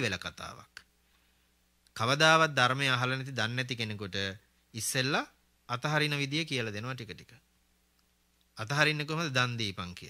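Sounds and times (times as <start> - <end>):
man speaking into microphone: 0.0 - 0.9, 2.0 - 7.4, 8.6 - 10.0.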